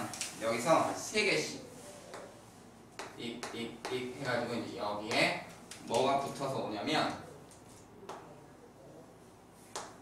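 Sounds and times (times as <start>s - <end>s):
chalk tapping on blackboard: 3.0s - 4.1s, 9.7s - 10.0s.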